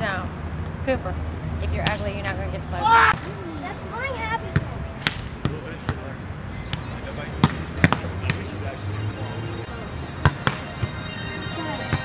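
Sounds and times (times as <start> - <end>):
volleyball being struck: 6.7 - 8.5, 10.2 - 11.0.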